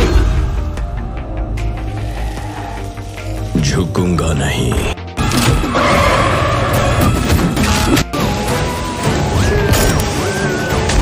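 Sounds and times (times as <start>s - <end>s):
action trailer music: 0.0s - 11.0s.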